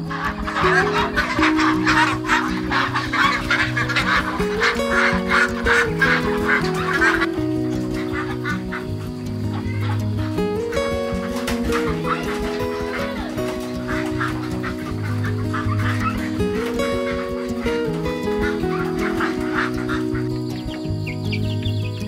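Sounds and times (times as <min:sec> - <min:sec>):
background music: 0:00.0 - 0:22.0
ducks quacking: 0:00.0 - 0:22.0.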